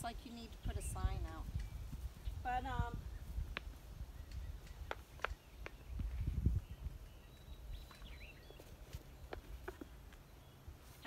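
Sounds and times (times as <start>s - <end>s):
footsteps scuffing on soil: 7.4s - 11.0s.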